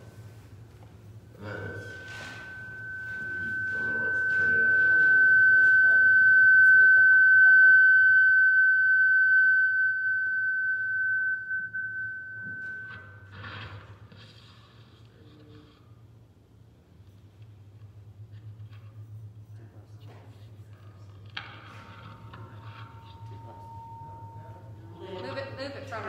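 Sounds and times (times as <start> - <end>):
microphone feedback ringing: 1.3 - 14.0, 21.4 - 24.9.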